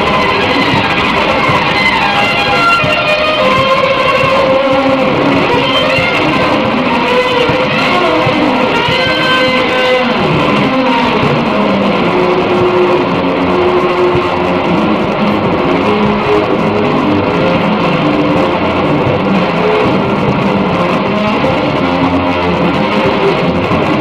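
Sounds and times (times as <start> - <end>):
electric guitar music: 0.0 - 24.0.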